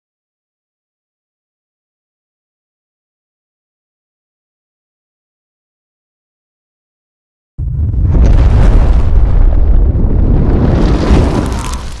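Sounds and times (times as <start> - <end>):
deep rumbling boom: 7.6 - 12.0.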